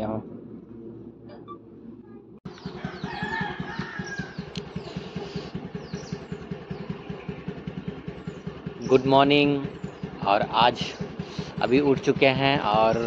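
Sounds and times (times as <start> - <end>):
small birds chirping: 1.4 - 13.0
scooter engine idling: 2.4 - 13.0
rooster crowing: 2.6 - 5.0.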